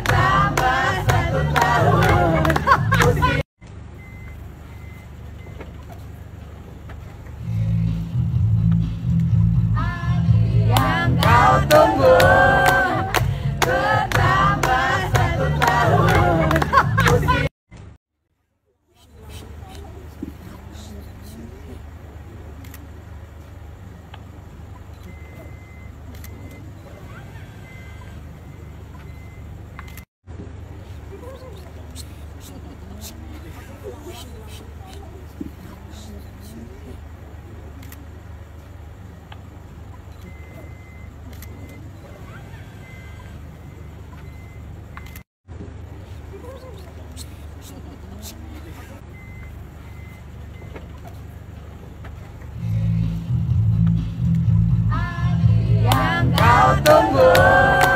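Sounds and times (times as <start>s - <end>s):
voices murmuring: 0.0s - 3.4s, 10.6s - 17.5s, 19.0s - 29.9s, 30.6s - 52.6s, 55.8s - 57.9s
van engine idling: 0.0s - 17.5s, 19.2s - 57.9s
high electronic beep tone: 4.0s - 5.6s.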